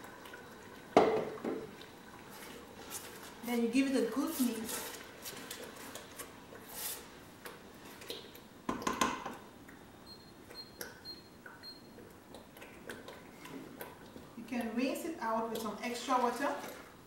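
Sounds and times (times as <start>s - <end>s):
wood knocking against metal pot: 1.0s - 1.7s, 8.7s - 9.3s
wooden spoon stirring thick paste: 2.3s - 8.3s.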